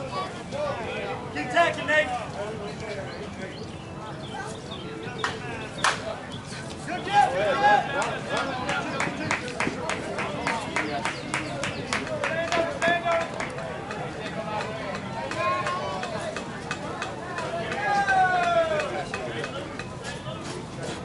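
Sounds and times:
people calling across a field: 0:00.0 - 0:21.0
sharp claps: 0:05.2 - 0:06.1, 0:07.9 - 0:17.8.

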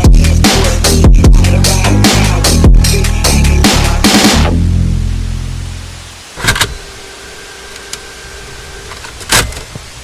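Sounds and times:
faint steady tone: 0:05.0 - 0:10.0.

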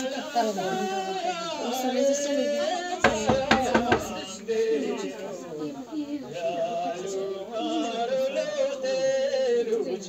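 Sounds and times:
voices singing slow song: 0:00.0 - 0:10.0.

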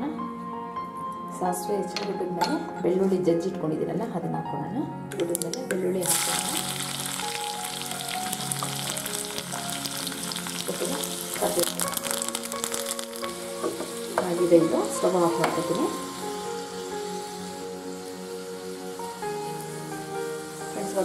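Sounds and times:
garlic sizzling in hot oil: 0:05.1 - 0:21.0.

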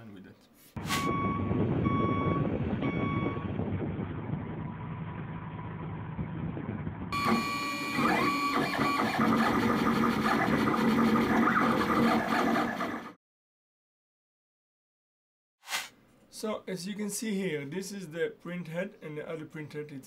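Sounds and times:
stepper motors whirring: 0:07.2 - 0:13.1.

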